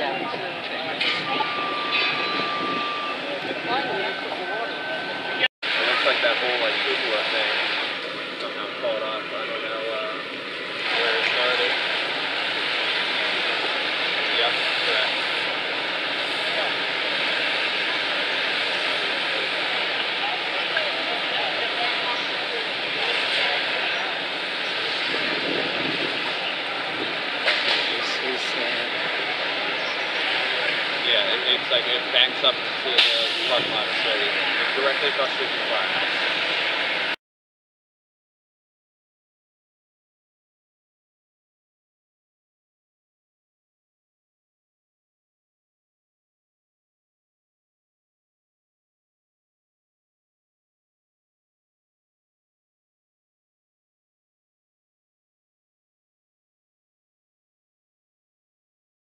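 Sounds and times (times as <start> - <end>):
fire engines and pumps roaring: 0.0 - 37.2
hoses spraying water: 5.7 - 8.5, 10.6 - 37.0.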